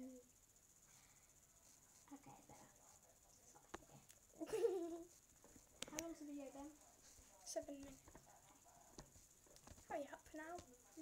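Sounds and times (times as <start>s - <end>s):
faint small clicks: 5.8s - 6.1s.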